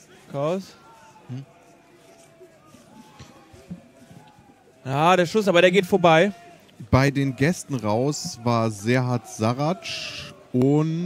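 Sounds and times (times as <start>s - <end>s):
distant players shouting: 0.7s - 10.6s.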